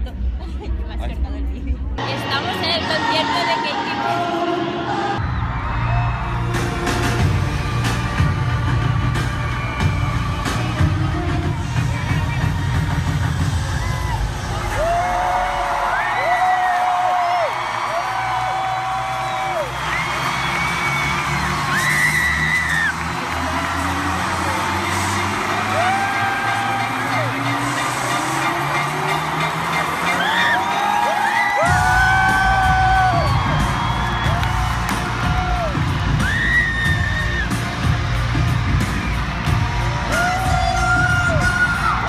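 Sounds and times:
fans screaming and whooping: 2.6 - 42.0
heavy bass beat: 5.2 - 15.4, 22.7 - 42.0.

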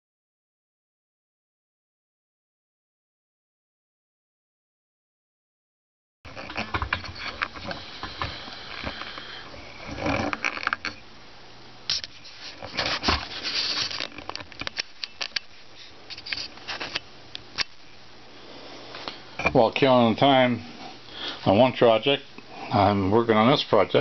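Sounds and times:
rustling: 11.9 - 17.0.

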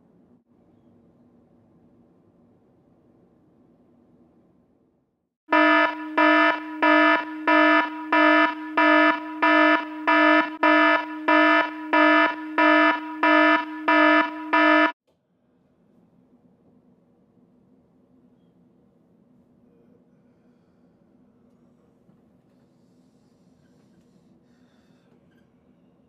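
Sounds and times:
clock radio alarm beeps: 5.5 - 15.0.

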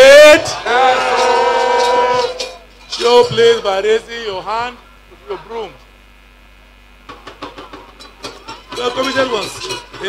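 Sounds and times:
crowd cheering: 0.0 - 2.7
electrical hum from loudspeakers: 0.0 - 10.0.

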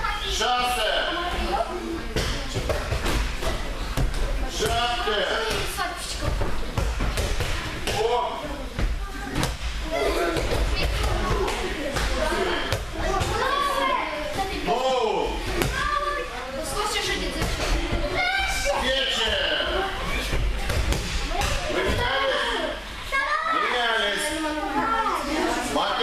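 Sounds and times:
people talking in a hall: 0.0 - 26.0.

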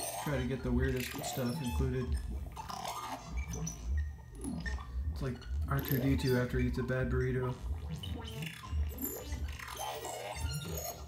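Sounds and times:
synthesizer chirps and bleeps: 0.0 - 11.0.

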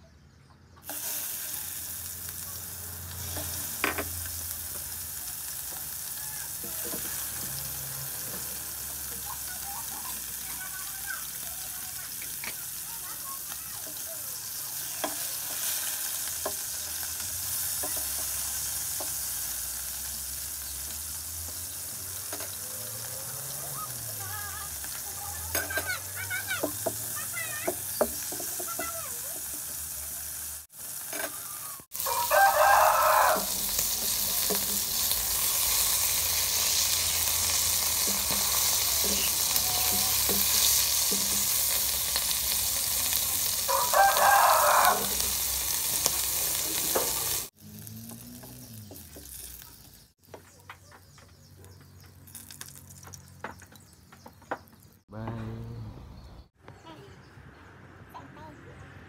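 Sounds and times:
food sizzling in oil: 0.8 - 50.3, 52.1 - 53.9
rooster crowing: 31.6 - 34.5, 43.5 - 45.4.

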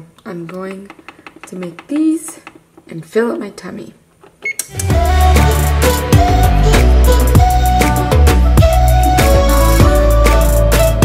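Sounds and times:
music with deep bass and beat: 4.8 - 11.0.

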